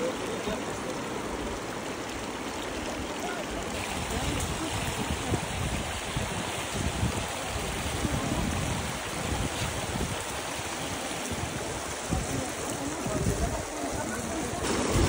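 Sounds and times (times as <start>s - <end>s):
shallow water rushing: 0.0s - 15.0s
wind gusts on microphone: 3.7s - 15.0s.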